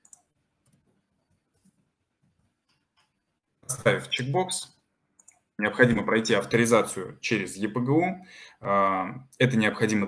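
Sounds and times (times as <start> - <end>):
keyboard clicks: 0.0 - 0.8, 5.2 - 5.4.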